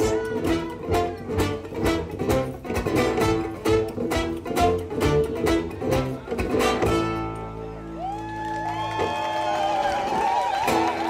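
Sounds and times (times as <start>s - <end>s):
audience whooping and cheering: 7.7s - 11.0s.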